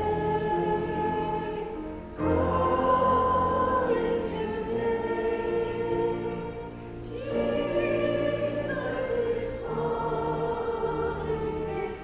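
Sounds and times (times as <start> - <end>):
women singing a hymn: 0.0 - 12.0.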